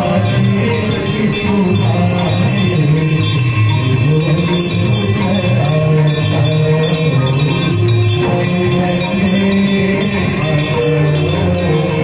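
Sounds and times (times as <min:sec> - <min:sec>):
bells and jingling percussion: 0:00.0 - 0:12.0
chanted devotional song: 0:00.0 - 0:12.0.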